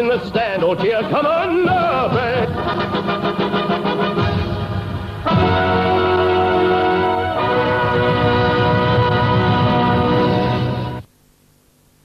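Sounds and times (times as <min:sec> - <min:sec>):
held chord of recorded song: 0:00.0 - 0:11.1
faint hiss: 0:10.9 - 0:12.0.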